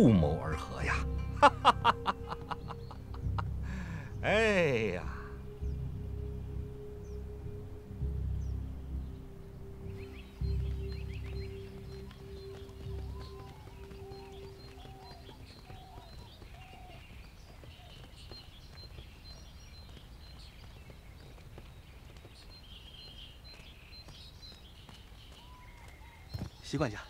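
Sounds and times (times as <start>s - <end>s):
music with heavy low beats: 0.0s - 15.4s
birds chirping: 0.0s - 27.0s.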